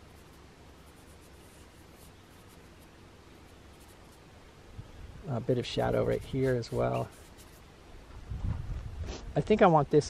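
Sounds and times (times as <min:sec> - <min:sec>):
paintbrush scratchy strokes: 0:00.0 - 0:04.2, 0:05.4 - 0:07.7.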